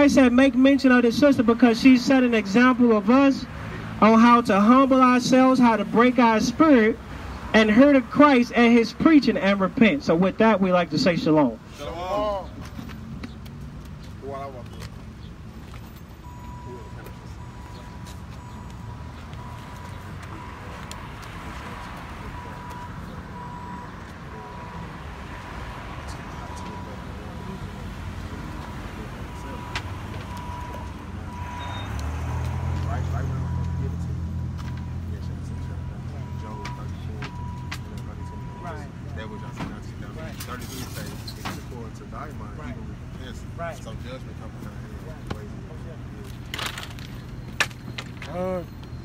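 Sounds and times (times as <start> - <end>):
street traffic rumble: 0.0 - 49.0
people talking: 4.0 - 7.0, 26.1 - 30.9, 34.9 - 46.4, 48.2 - 48.7.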